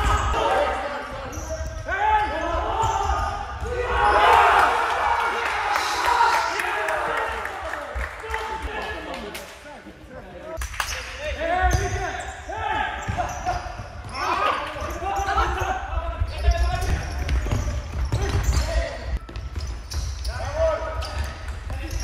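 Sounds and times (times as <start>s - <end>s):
sneakers squeaking on floor: 0.0s - 4.2s, 10.9s - 22.0s
players calling out: 11.3s - 19.2s.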